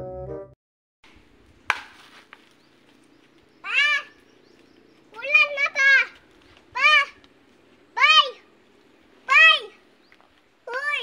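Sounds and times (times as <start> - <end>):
child's high-pitched call: 3.6 - 4.2, 5.2 - 7.2, 8.0 - 8.4, 9.3 - 9.8, 10.7 - 11.0.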